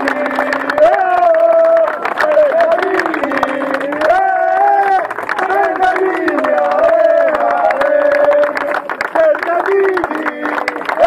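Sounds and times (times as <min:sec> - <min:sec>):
group singing held notes: 0:00.0 - 0:10.8
hand clapping: 0:00.0 - 0:11.0.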